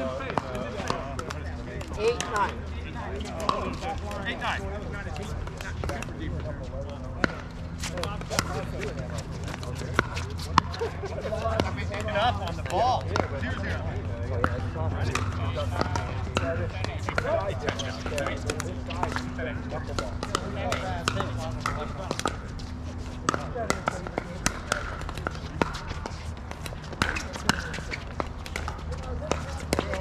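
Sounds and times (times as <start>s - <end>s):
distant chatter: 0.0s - 30.0s
paddles hitting pickleballs: 0.0s - 30.0s
steady low hum: 0.0s - 30.0s.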